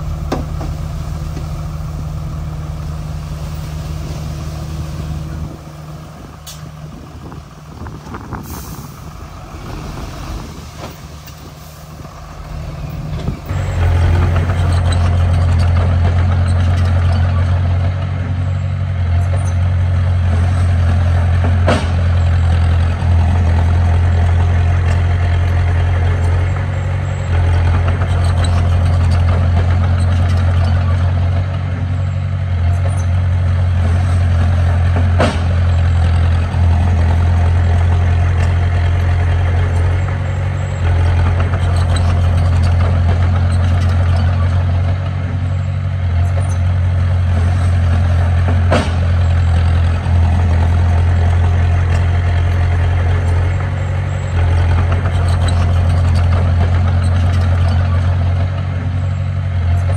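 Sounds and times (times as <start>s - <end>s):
bulldozer diesel engine running: 0.0s - 59.9s.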